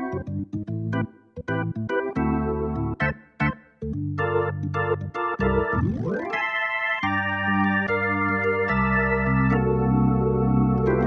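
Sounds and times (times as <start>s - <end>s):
organ chords on digital piano: 0.0s - 11.0s.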